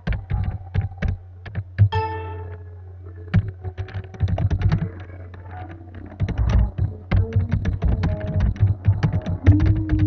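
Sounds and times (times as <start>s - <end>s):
steady low hum: 0.0s - 10.0s
keyboard key clicks: 6.2s - 10.0s.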